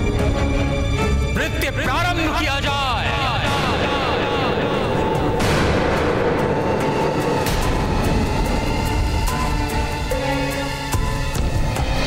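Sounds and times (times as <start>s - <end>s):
background music: 0.0s - 12.0s
deep rumbling boom: 3.1s - 9.4s.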